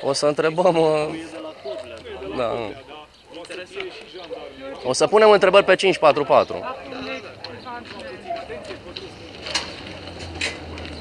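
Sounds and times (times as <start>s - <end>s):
people talking outdoors: 0.0s - 11.0s
footsteps on gravel: 6.8s - 11.0s.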